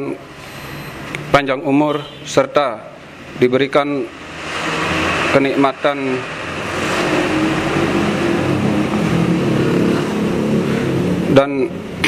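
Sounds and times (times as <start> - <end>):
speech: 1.3 - 4.1, 5.3 - 6.2, 11.3 - 11.8.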